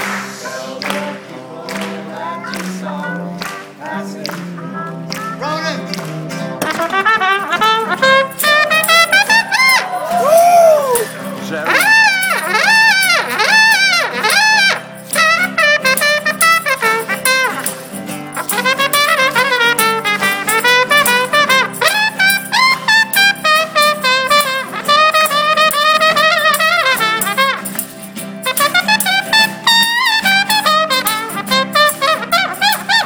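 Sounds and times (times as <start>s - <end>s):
acoustic guitar: 0.0s - 33.0s
trumpet solo: 1.7s - 33.0s
fiddle: 5.4s - 33.0s.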